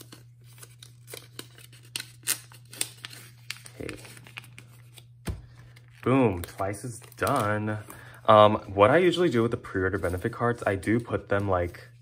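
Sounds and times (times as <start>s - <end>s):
plastic sleeves crinkling: 0.0s - 12.0s.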